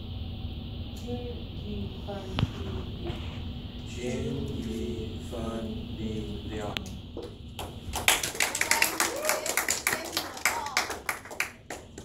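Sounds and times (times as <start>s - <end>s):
voices: 1.0s - 7.0s, 8.0s - 12.0s
audience clapping: 7.6s - 12.0s.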